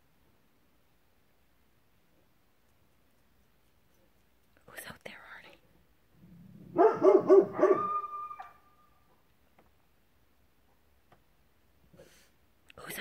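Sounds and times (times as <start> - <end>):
dog barking deeply: 6.6 - 8.6
dog howling: 6.8 - 8.8.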